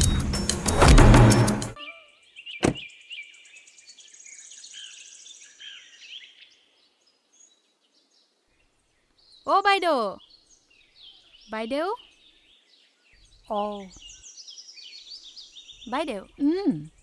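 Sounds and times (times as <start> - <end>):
sharp knock: 0.4 - 1.8, 2.6 - 2.8
faint bird chirps: 1.8 - 17.0.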